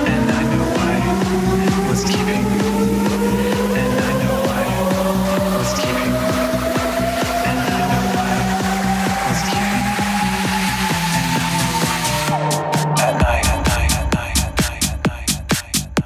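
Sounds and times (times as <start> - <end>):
long rising synth tone: 0.0 - 14.6
kick drum beat: 0.0 - 16.0
repeating bass line: 0.0 - 16.0.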